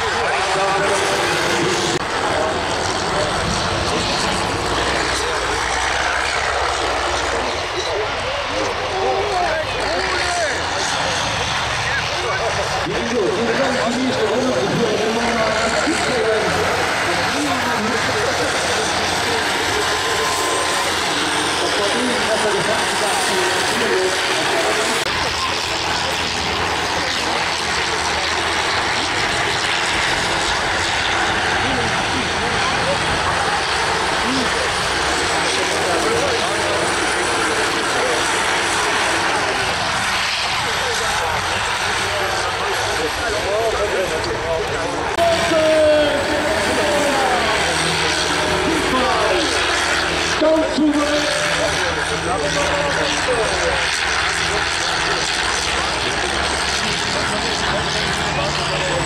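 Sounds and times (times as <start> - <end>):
combine harvester engines droning: 0.0 - 59.0
announcer over loudspeaker: 45.2 - 54.0.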